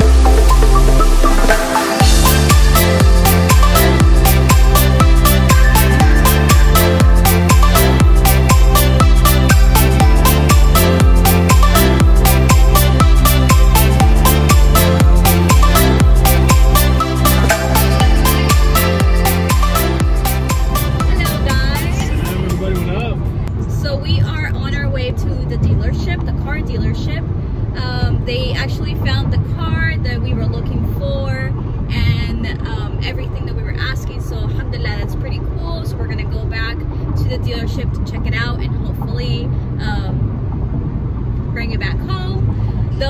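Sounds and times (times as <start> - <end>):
background music: 0.0 - 24.0
car cabin road rumble: 20.8 - 43.0
people talking: 20.9 - 40.2, 41.5 - 43.0.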